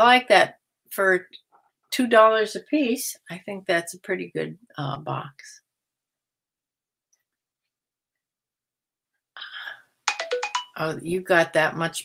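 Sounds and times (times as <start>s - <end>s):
woman's voice: 0.0s - 5.7s, 10.8s - 12.0s
phone ringtone: 10.0s - 10.8s.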